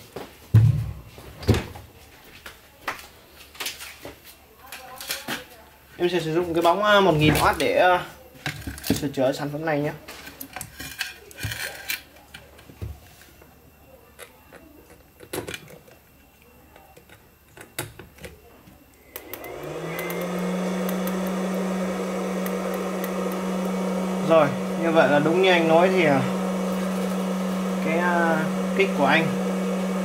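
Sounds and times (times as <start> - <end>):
cooling fan humming: 19.0 - 30.0.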